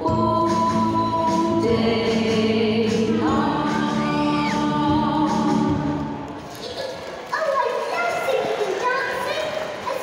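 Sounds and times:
child talking and calling out: 6.6 - 10.0.

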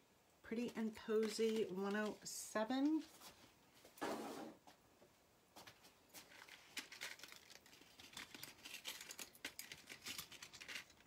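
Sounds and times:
packaging clicks and crinkles: 1.1 - 2.3, 6.2 - 11.0
packaging rustle: 6.2 - 11.0.

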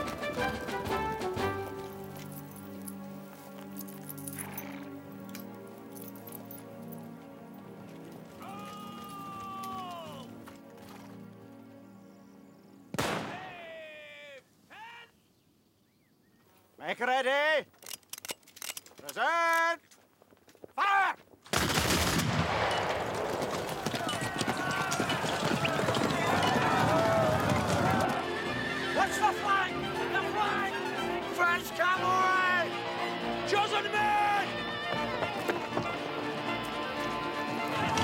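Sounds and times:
orchestral film music: 0.0 - 13.3, 26.2 - 38.0
long shouted calls: 8.4 - 10.4
people yelling: 8.4 - 10.4, 13.3 - 15.2, 23.7 - 35.7, 36.6 - 38.0
musket volley crackle: 12.9 - 13.8, 18.3 - 28.2.

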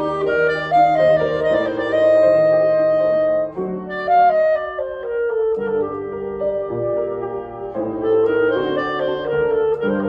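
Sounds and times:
clarinet sustained notes: 0.0 - 10.0
piano accompaniment: 0.0 - 10.0.

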